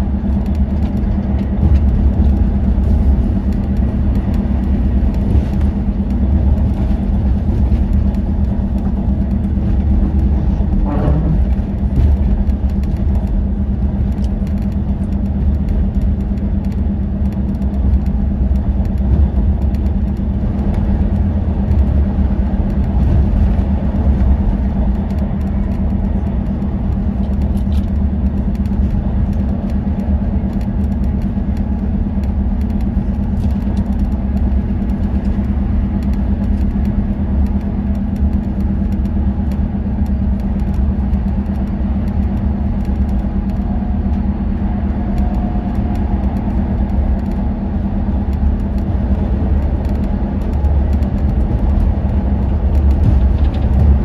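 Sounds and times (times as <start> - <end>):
constant hum: 0.0 - 54.0
diesel engine drone: 0.0 - 54.0
tyre and road rumble: 0.0 - 54.0.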